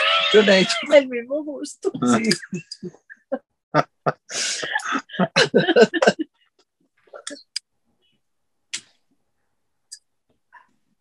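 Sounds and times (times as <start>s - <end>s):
people laughing: 2.2s - 6.3s.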